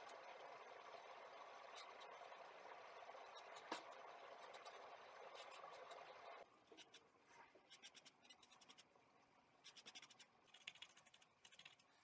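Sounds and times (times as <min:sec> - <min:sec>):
paintbrush scratching: 0:04.4 - 0:06.0, 0:06.7 - 0:08.9, 0:09.6 - 0:11.9.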